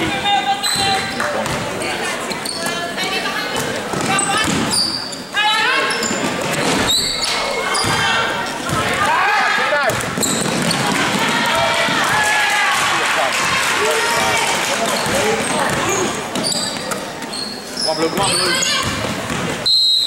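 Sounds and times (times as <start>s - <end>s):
voices and shouts in hall: 0.0s - 19.7s.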